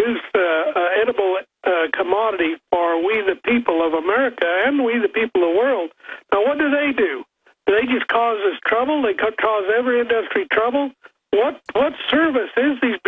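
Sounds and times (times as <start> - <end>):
man talking over telephone: 0.0 - 13.0.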